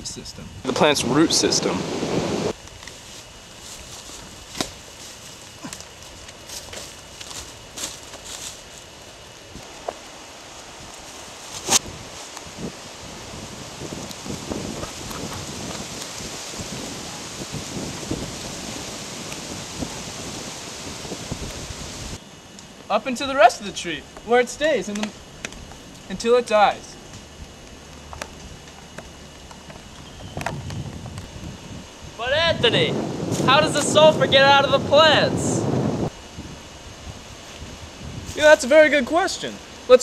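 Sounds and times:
steady hiss: 0:00.0 - 0:40.0
rustling of dry leaves: 0:02.5 - 0:22.9, 0:23.6 - 0:40.0.

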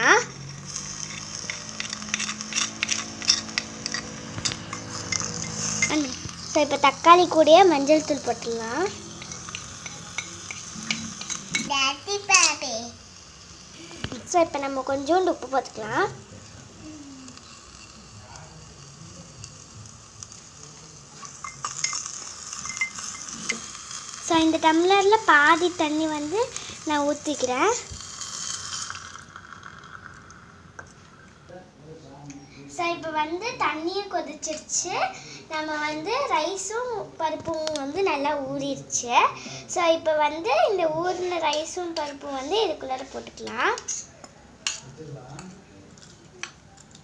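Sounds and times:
faint sizzle of frying: 0:00.0 - 0:47.0
spoon scraping clay pot: 0:00.7 - 0:11.7, 0:21.2 - 0:23.8.

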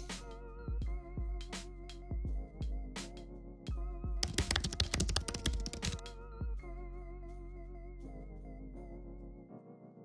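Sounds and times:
rapid keyboard typing clicks: 0:04.2 - 0:06.1.

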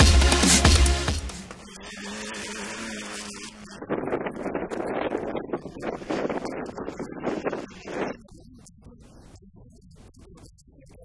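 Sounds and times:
distant rally car engine revving: 0:00.0 - 0:08.2
wind noise on microphone: 0:01.8 - 0:11.0.

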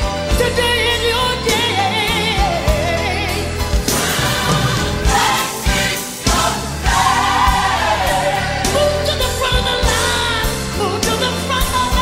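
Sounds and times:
bass and drums: 0:00.0 - 0:12.0
choir singing gospel song: 0:01.5 - 0:12.0.

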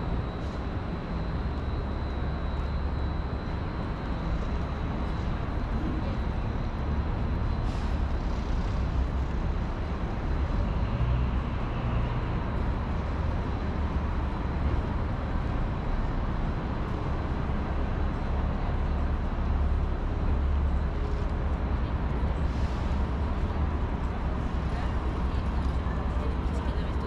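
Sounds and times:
city traffic rumble: 0:00.0 - 0:27.0.

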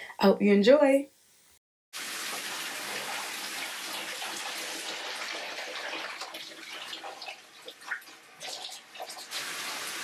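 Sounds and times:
shower water spraying: 0:02.0 - 0:07.1, 0:08.4 - 0:10.0.

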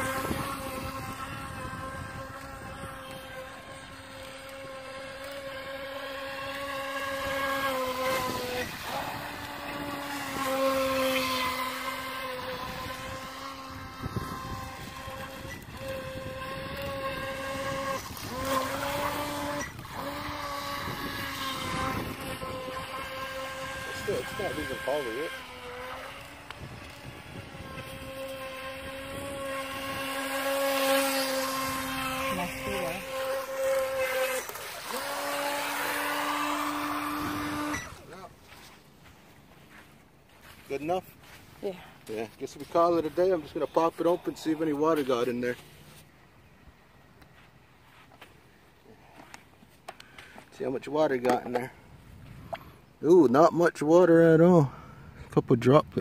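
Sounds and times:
boat motor whining: 0:00.0 - 0:38.8.

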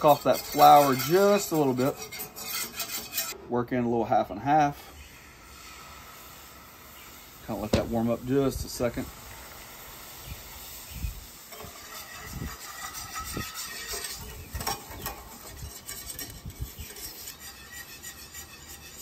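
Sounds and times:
whisk scraping a steel skillet: 0:00.0 - 0:03.4, 0:10.1 - 0:19.0.

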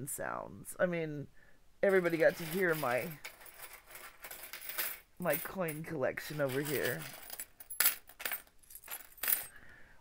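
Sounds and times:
coins clinking: 0:01.9 - 0:09.6.

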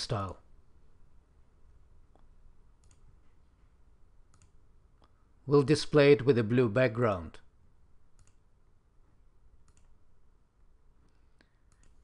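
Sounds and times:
computer mouse clicks: 0:02.1 - 0:03.1, 0:04.3 - 0:05.2, 0:08.1 - 0:08.4, 0:09.6 - 0:10.0, 0:11.0 - 0:12.0.

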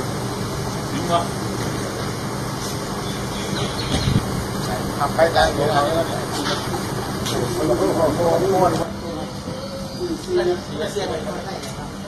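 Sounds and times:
low mechanical hum: 0:00.0 - 0:12.0
faint voices: 0:04.4 - 0:12.0.

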